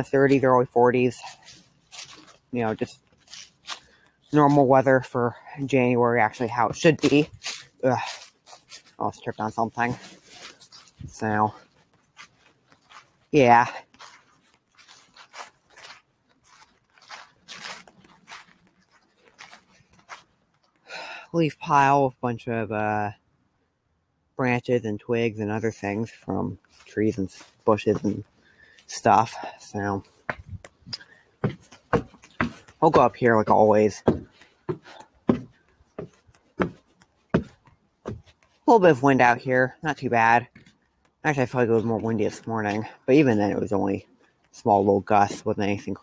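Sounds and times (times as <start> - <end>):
footsteps crunching dry leaves: 0.0 - 5.2, 6.2 - 20.8, 26.0 - 39.4
footsteps on wooden stairs: 26.7 - 28.4, 30.0 - 38.6, 40.5 - 40.8.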